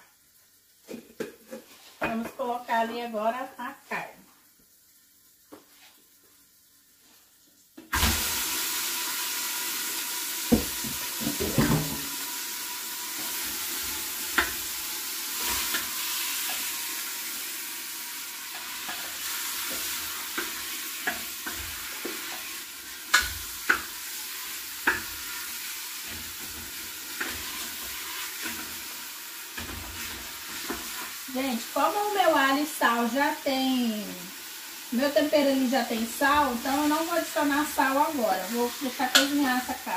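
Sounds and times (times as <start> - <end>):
meat sizzling in hot oil: 2.7 - 39.9.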